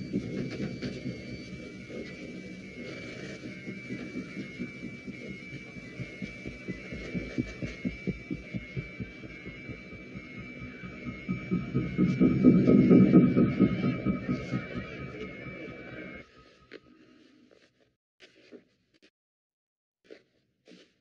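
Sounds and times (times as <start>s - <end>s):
low throbbing pulses: 0.0s - 16.4s.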